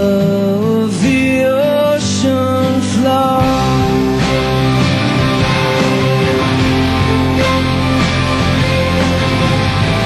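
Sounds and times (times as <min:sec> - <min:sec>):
guitars strumming: 0:00.0 - 0:10.0
live rock band playing: 0:00.0 - 0:10.0.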